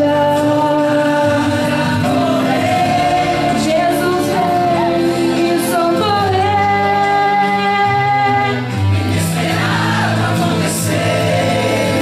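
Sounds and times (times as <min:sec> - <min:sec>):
woman singing into microphone: 0:00.0 - 0:08.8
choir singing a hymn: 0:00.3 - 0:07.2, 0:08.7 - 0:12.0.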